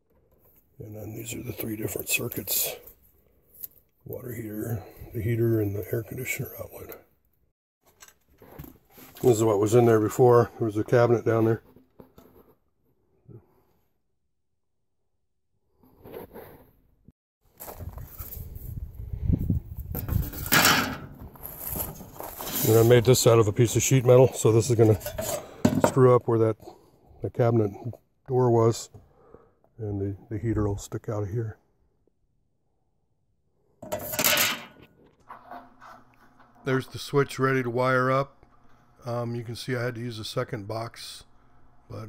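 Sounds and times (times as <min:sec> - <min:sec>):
rustling noise: 0:17.5 - 0:23.4
metal panel scraping and rattling: 0:20.0 - 0:23.0
faint clatters and knocks: 0:33.8 - 0:36.7.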